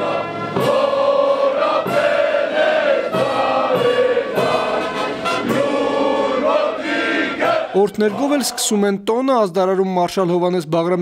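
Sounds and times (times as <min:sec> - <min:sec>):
brass accompaniment: 0:00.0 - 0:08.8
choir singing: 0:00.0 - 0:08.8.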